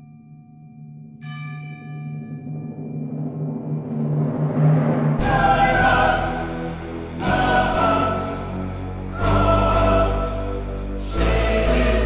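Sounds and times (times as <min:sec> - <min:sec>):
timpani roll: 0:02.2 - 0:07.7
orchestral chords: 0:03.0 - 0:12.0.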